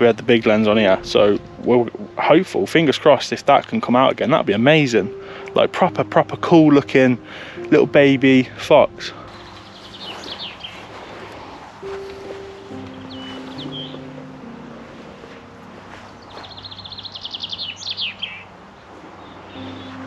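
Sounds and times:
soft background music: 0.0s - 20.0s
songbird singing and trilling: 8.9s - 11.2s, 11.8s - 14.6s, 15.9s - 20.0s.

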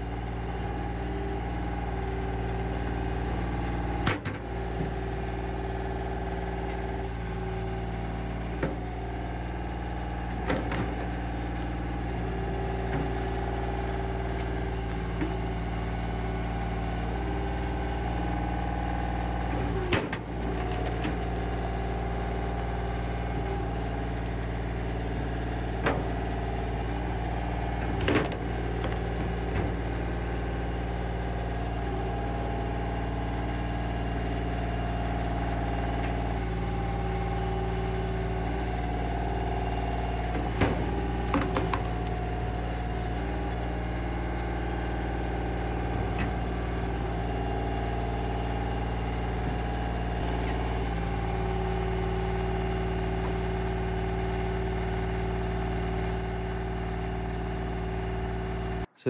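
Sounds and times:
engine running steadily: 0.0s - 59.0s.

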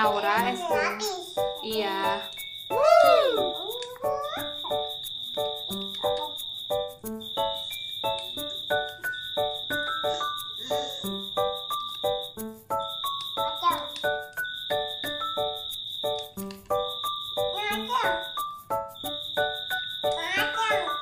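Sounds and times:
light background music: 0.0s - 21.0s
regular ticking: 0.0s - 21.0s.

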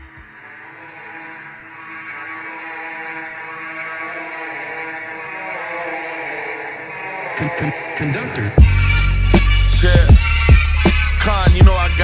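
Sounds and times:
steady drone of held pitches: 0.0s - 12.0s.

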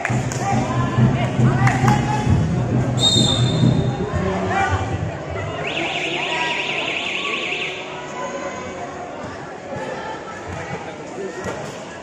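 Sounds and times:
voices on a court: 0.0s - 12.0s
electronic alarm warbling: 5.4s - 8.0s.

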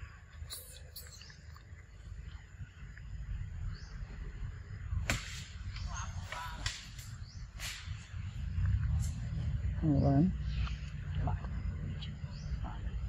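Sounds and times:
low rumble: 1.9s - 13.0s.

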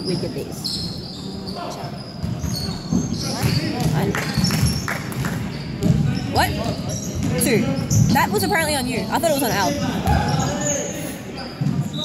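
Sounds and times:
voices in background: 0.0s - 12.0s.

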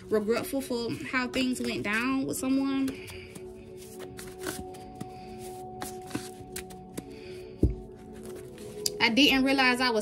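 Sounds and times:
background music with held tones: 0.0s - 10.0s
cards being shuffled: 3.0s - 7.1s.

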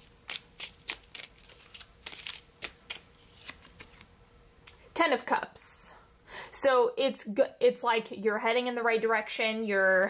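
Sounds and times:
cards being shuffled: 0.0s - 4.1s.

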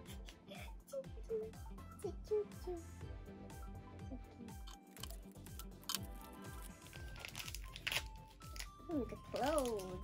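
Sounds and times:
background music: 0.0s - 10.0s
plastic wrapper crinkling: 4.9s - 10.0s.

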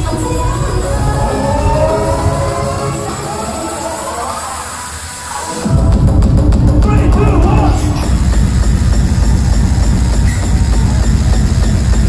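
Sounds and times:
loud hardstyle dance music: 0.0s - 12.0s.

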